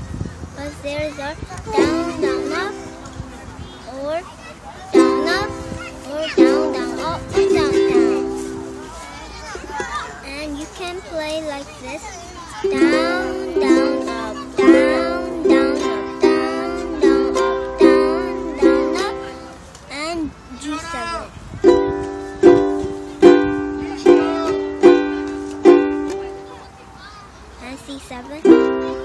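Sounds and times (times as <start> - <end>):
ukulele chords strummed: 1.7 - 3.7, 4.9 - 9.2, 12.6 - 19.6, 21.6 - 26.8, 28.4 - 29.0.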